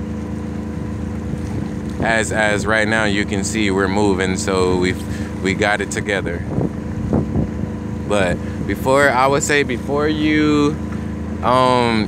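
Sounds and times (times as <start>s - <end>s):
water rushing past: 0.0s - 11.3s
boat engine humming: 0.0s - 12.0s
wind rushing: 6.3s - 8.8s.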